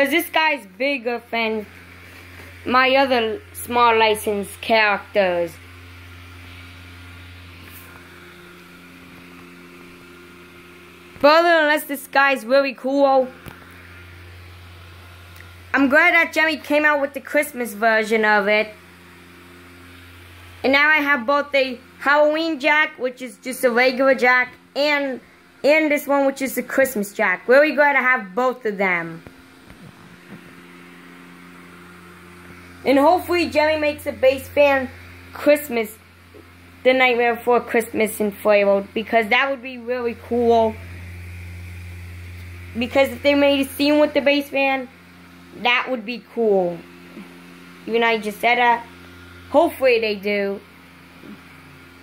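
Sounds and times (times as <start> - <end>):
blower fan humming: 0.0 - 52.0.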